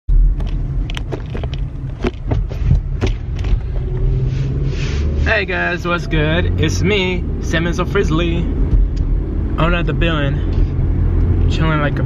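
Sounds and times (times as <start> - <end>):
car cabin rumble: 0.1 - 12.0
sharp clicks and knocks: 0.3 - 4.1.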